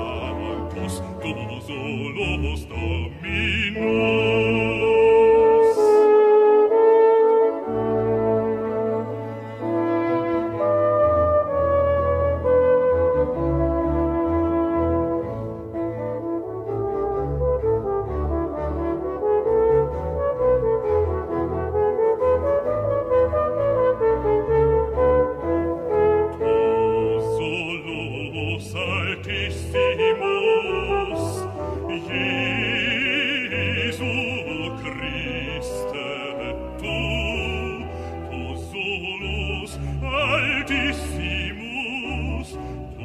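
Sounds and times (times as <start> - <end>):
french horn solo melody: 0.0 - 43.0.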